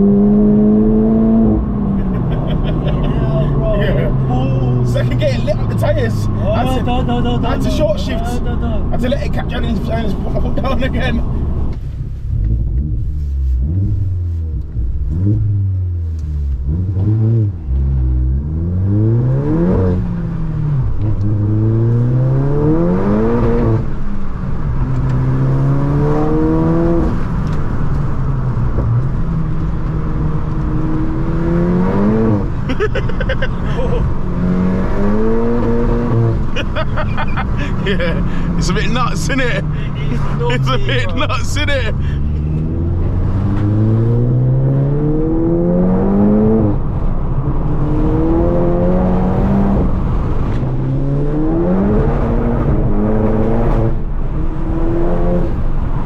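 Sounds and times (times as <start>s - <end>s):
car engine accelerating and upshifting: 0.0s - 56.0s.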